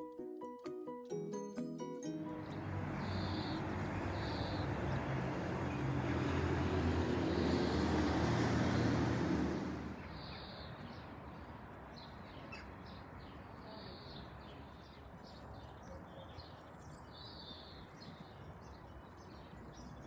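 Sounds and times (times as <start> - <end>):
small birds chirping: 2.3 - 6.4, 10.0 - 20.0.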